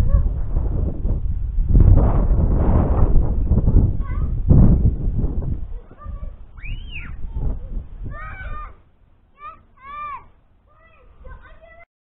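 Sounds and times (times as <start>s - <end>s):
wind buffeting microphone: 0.0s - 8.8s, 10.9s - 11.8s
short high calls: 6.5s - 7.3s.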